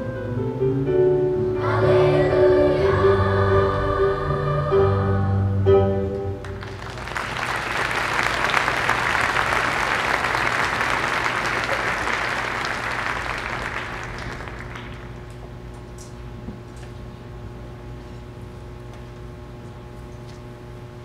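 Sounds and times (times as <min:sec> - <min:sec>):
children's choir singing: 0:01.5 - 0:06.0
audience applauding: 0:06.4 - 0:15.4.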